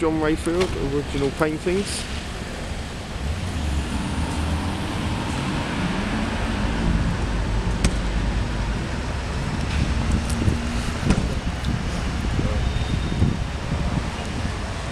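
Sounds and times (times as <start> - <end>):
low rumble of city traffic: 0.0 - 14.9
wind noise on microphone: 3.1 - 14.9.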